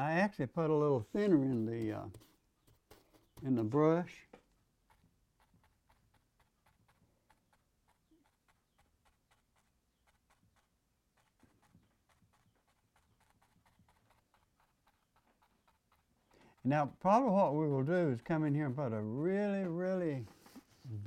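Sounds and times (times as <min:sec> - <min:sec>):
brush tapping on canvas: 0:01.2 - 0:20.8.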